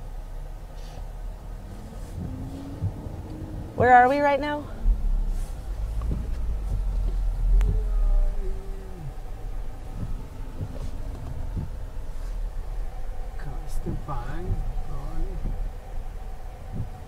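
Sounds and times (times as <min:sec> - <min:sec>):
car engine and tyre rumble: 0:00.0 - 0:17.0.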